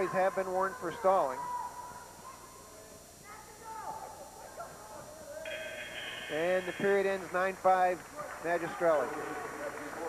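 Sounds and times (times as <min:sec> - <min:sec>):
faint shouting: 0:00.0 - 0:02.5.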